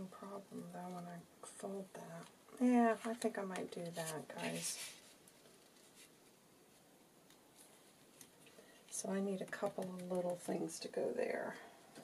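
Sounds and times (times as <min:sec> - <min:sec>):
paper rustling and ticking: 0:03.0 - 0:10.7.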